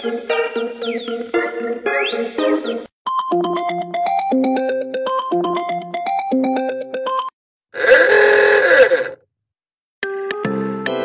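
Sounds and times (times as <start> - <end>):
phone ringtone melody: 3.1 - 9.1
harsh voice-like sliding sound: 7.8 - 9.2.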